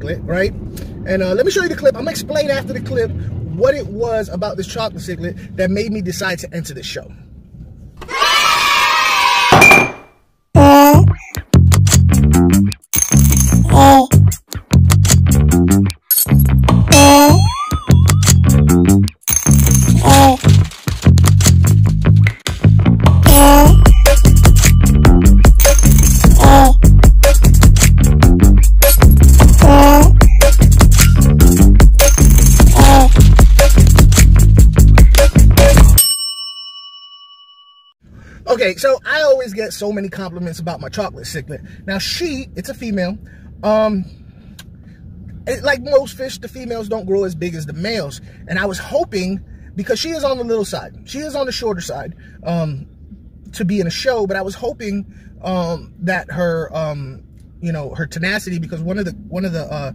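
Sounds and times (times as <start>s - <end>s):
sharp hit with ringing ping: 9.6s - 10.1s
bell-like ding: 23.5s - 26.2s, 36.0s - 38.0s.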